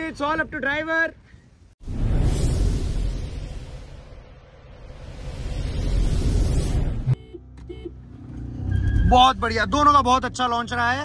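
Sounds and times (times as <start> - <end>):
rushing noise: 1.8 - 7.2.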